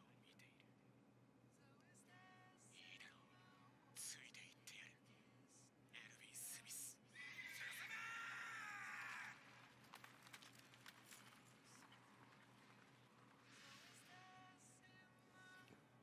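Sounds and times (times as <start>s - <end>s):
man speaking: 4.0s - 5.1s, 6.0s - 8.1s.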